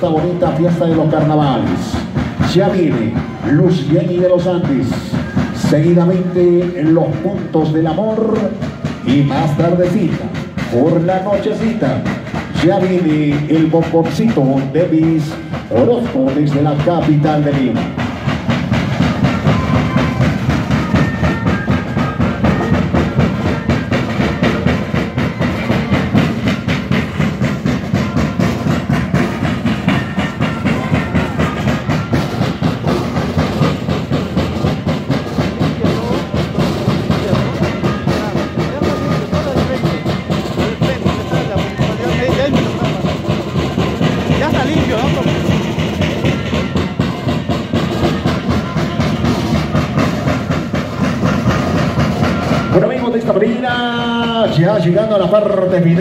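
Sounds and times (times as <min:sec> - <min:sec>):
carnival drum band playing dance music: 0:00.0 - 0:56.0.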